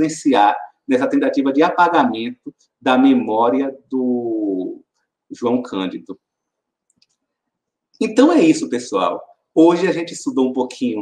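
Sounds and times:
man's voice: 0:00.0 - 0:04.8, 0:05.4 - 0:06.2, 0:08.0 - 0:11.0.

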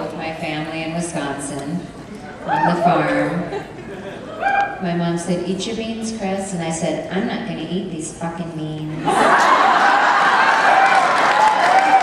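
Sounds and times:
audience laughing: 0:03.4 - 0:04.4, 0:09.0 - 0:11.0
audience applauding: 0:09.2 - 0:12.0.

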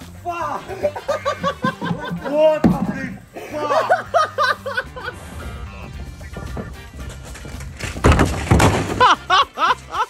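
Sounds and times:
plastic bin crashing onto gravel: 0:01.7 - 0:03.2, 0:06.3 - 0:09.3.

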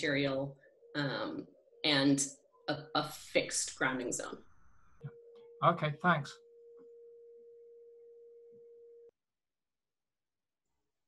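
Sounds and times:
faint steady pure tone: 0:00.0 - 0:09.1.

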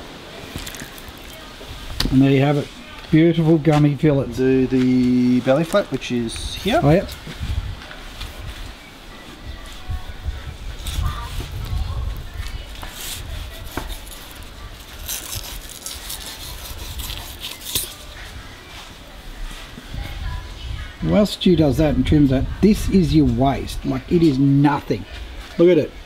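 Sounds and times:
knife scraping on cutting board: 0:15.0 - 0:18.1.

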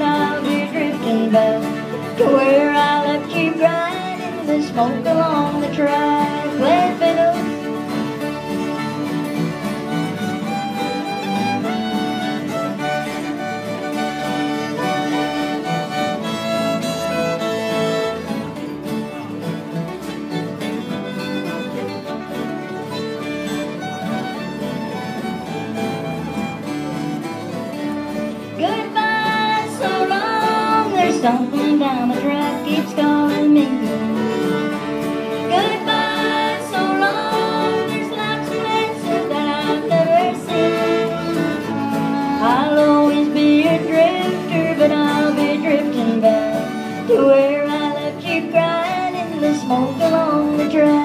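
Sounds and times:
fiddles playing melody: 0:00.0 - 0:51.0
strummed acoustic guitars: 0:00.0 - 0:51.0.

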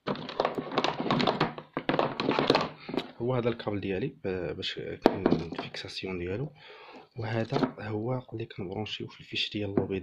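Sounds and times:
cable knocking on plastic case: 0:00.0 - 0:03.1.

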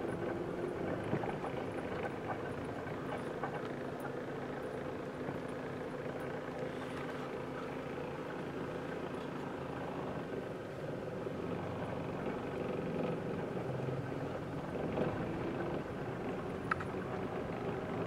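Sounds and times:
car engine hum: 0:00.0 - 0:18.0
road noise inside car: 0:00.0 - 0:18.0.

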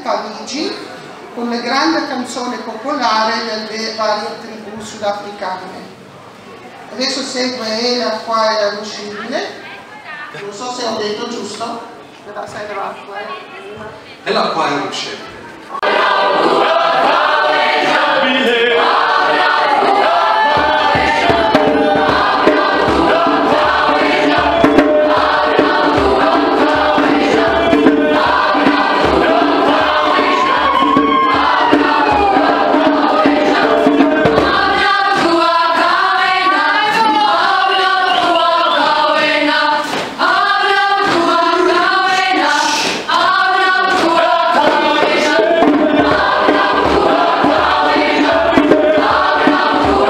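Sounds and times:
choir singing: 0:15.6 - 0:50.0.

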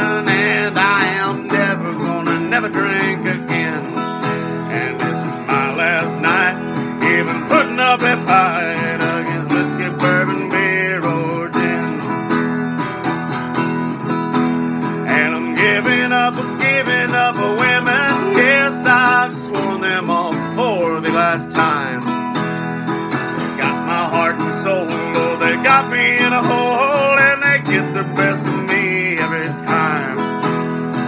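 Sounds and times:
man singing: 0:00.0 - 0:12.7, 0:14.7 - 0:22.5, 0:23.2 - 0:31.0
acoustic guitar strummed: 0:00.0 - 0:31.0.

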